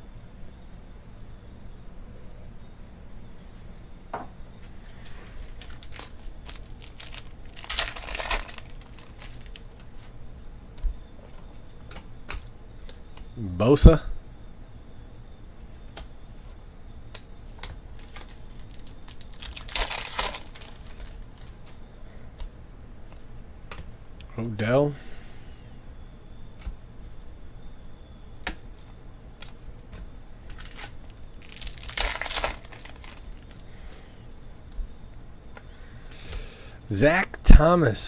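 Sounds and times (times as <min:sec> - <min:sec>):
card wrappers crinkling and tearing: 0:05.4 - 0:10.1, 0:18.0 - 0:21.8, 0:30.5 - 0:33.7
cards clicking while shuffled: 0:29.4 - 0:29.6.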